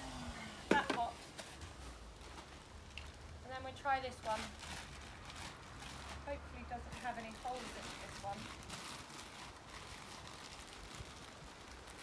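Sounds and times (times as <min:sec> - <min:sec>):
plastic bag rustling: 0:00.7 - 0:12.0.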